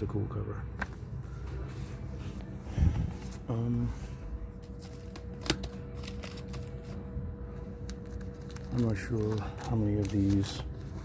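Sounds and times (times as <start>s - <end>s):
faint steady hum: 0.0s - 11.0s
paper rustling of comic books: 0.8s - 11.0s.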